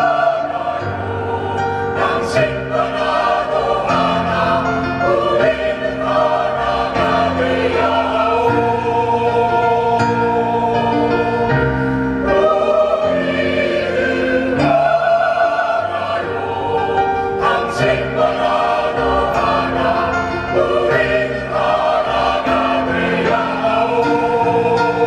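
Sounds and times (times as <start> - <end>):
mixed choir singing in harmony: 0.0 - 25.0.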